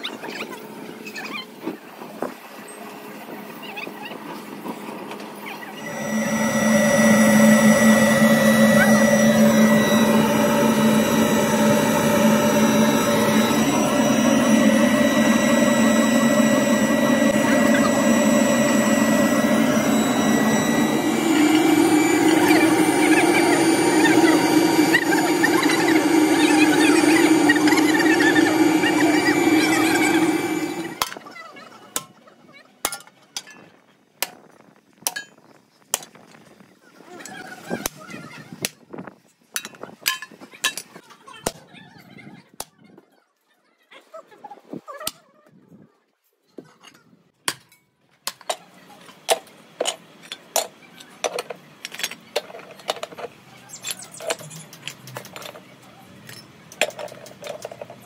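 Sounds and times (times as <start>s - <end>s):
furnace burner whine and hum: 4.6s - 31.2s.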